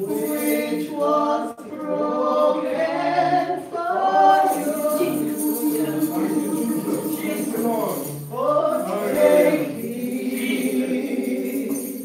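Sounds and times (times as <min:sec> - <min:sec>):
women singing a hymn: 0:00.0 - 0:12.0.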